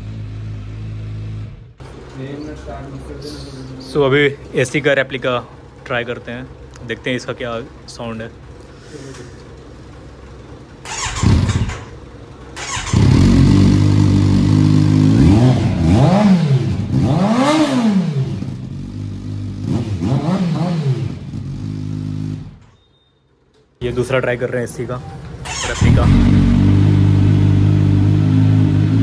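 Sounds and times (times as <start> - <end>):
motorcycle engine revving: 0.0 - 2.4, 10.8 - 22.7, 25.3 - 29.0
engine short burst: 10.8 - 18.5, 25.4 - 29.0.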